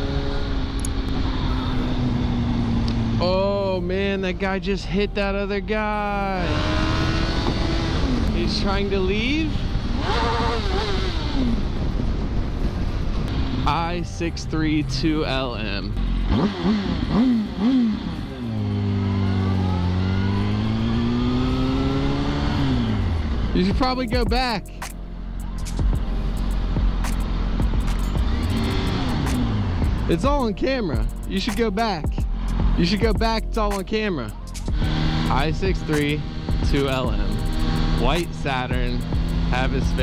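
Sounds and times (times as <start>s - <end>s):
motorcycle engine running: 0.0s - 24.6s, 25.3s - 40.0s
wind rushing: 6.5s - 16.0s.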